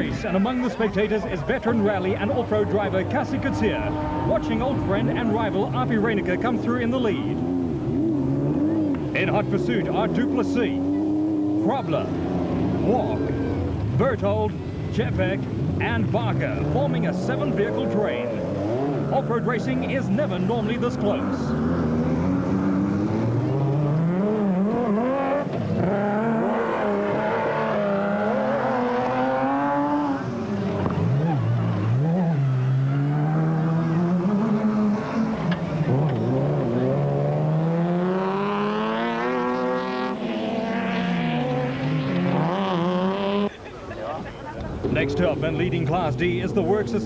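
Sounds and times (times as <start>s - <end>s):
truck engines revving past: 0.0s - 47.0s.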